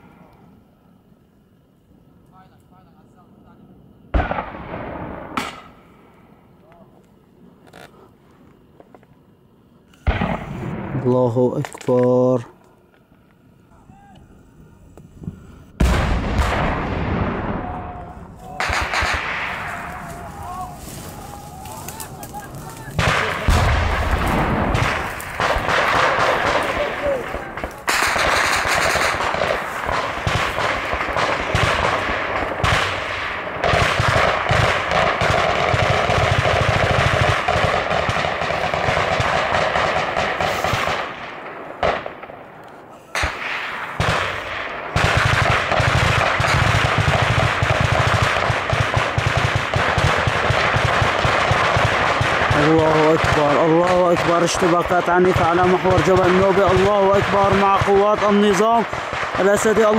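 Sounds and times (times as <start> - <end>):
automatic gunfire: 18.6 - 19.9, 23.0 - 42.2, 43.2 - 59.9.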